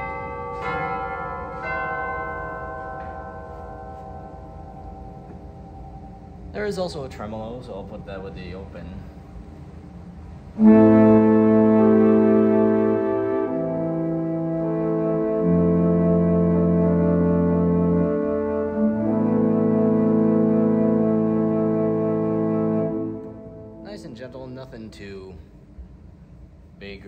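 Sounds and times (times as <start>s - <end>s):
pipe organ sustained chords: 0.0s - 26.6s.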